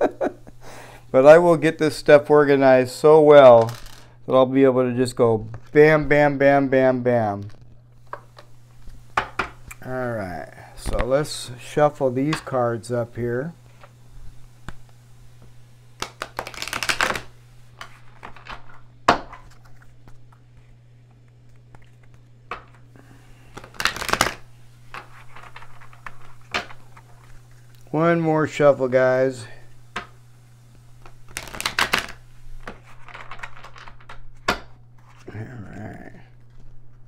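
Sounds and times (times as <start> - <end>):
cards being shuffled: 3.5 - 4.0, 13.6 - 27.9, 29.8 - 35.3
cards snapping: 16.0 - 18.4, 23.4 - 27.9, 31.0 - 34.7.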